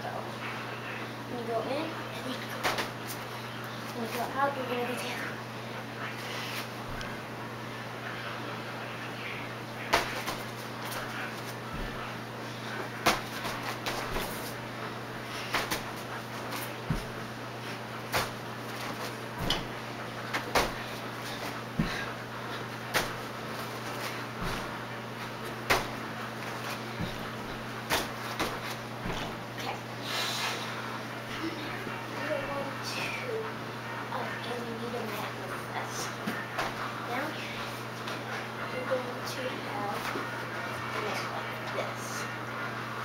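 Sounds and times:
steady low hum: 0.0s - 43.0s
feet thumping on floor and mat: 2.6s - 3.2s, 9.9s - 12.1s, 13.0s - 14.6s, 15.2s - 17.3s, 18.0s - 29.7s.

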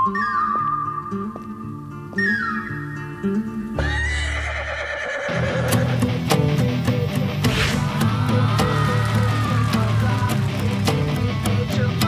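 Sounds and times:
horse whinny: 3.8s - 6.0s
drum and bass beat: 5.6s - 12.0s.

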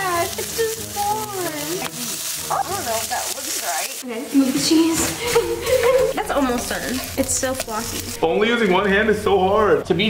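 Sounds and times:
patty sizzling in a pan: 0.0s - 8.7s.

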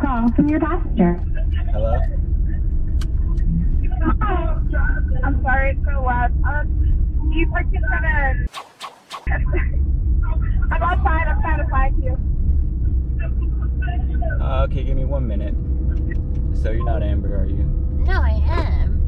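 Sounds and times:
low car cabin rumble: 0.0s - 8.5s, 9.3s - 19.0s
people talking: 0.0s - 8.5s, 9.3s - 12.2s, 13.2s - 19.0s.

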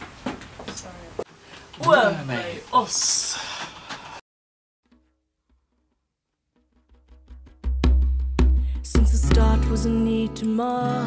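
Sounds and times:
deep bass: 7.8s - 10.4s.

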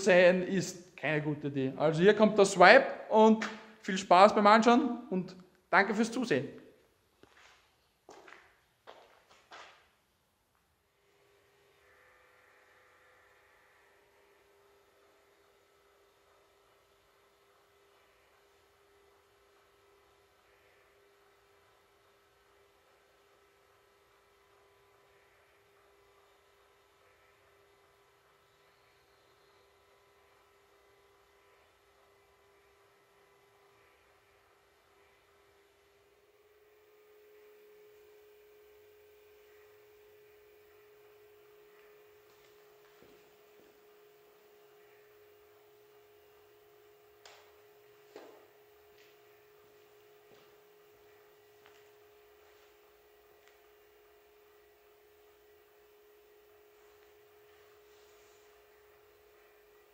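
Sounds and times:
faint steady hum: 0.0s - 59.9s
faint steady tone: 11.0s - 59.9s.

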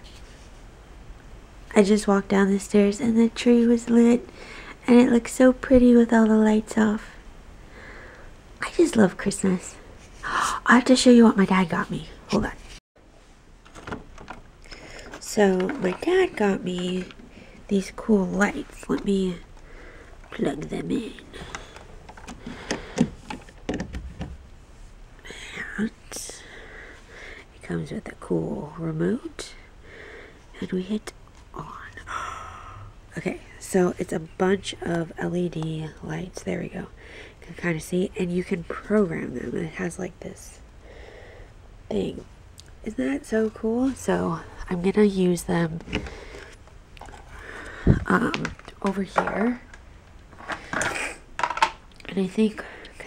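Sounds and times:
objects clicking and knocking: 50.4s - 51.9s.

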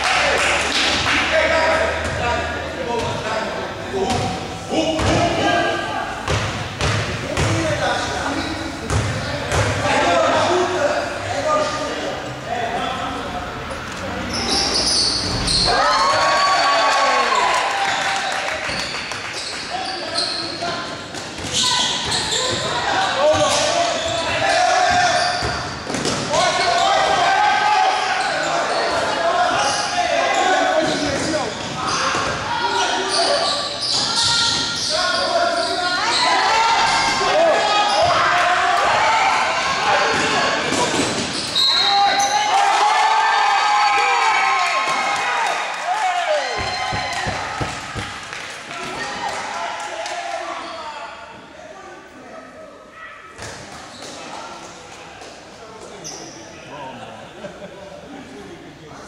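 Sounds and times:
basketball bouncing on court: 6.2s - 7.7s, 8.8s - 9.8s
people shouting: 15.6s - 17.7s, 34.1s - 40.9s.

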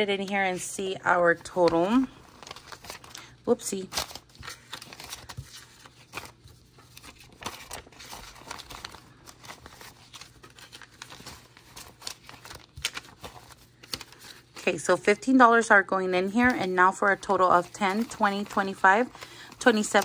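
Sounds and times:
paper bills rustling: 0.0s - 15.2s, 16.0s - 20.0s.

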